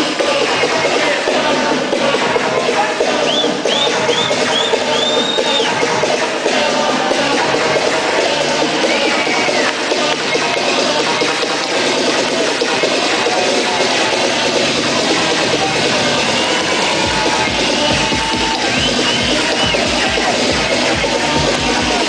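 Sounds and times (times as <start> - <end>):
electronic dance music: 0.0 - 22.0.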